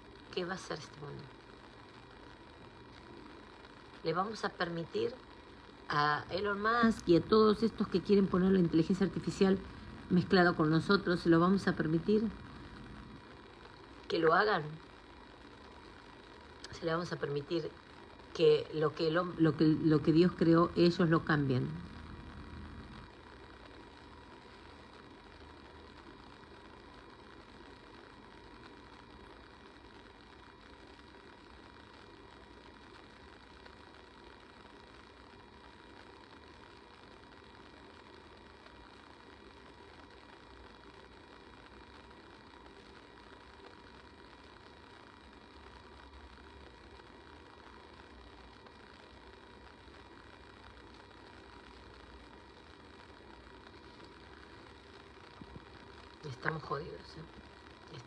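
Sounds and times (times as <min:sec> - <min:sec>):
faint hum: 0:00.0 - 0:58.0
low even hiss: 0:00.0 - 0:58.0.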